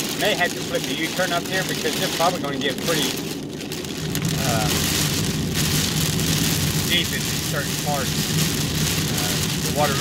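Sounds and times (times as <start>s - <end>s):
car engine hum: 0.0s - 10.0s
heavy rain on a car: 0.0s - 10.0s
tyres on wet road: 0.0s - 10.0s.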